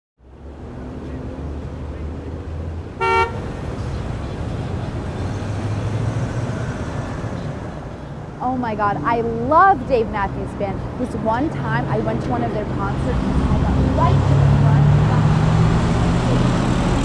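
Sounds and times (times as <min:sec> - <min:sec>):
traffic rumble: 0:00.2 - 0:17.0
car horn toot: 0:03.0 - 0:03.5.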